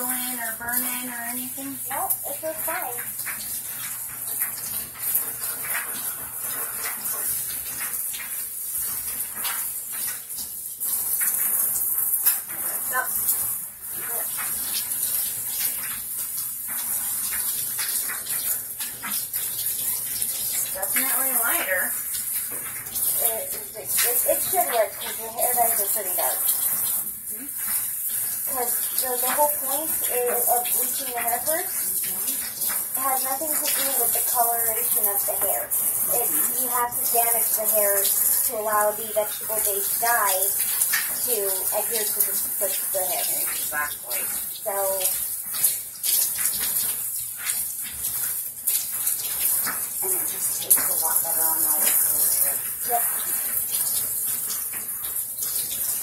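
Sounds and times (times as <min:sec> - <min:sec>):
people talking: 0:00.0 - 0:03.1, 0:12.8 - 0:13.1, 0:14.0 - 0:14.3, 0:20.7 - 0:22.0, 0:23.2 - 0:26.4, 0:27.3 - 0:27.5, 0:28.5 - 0:32.4, 0:33.0 - 0:40.6, 0:41.2 - 0:45.1, 0:50.0 - 0:53.1
shower spray hissing: 0:00.0 - 0:56.0.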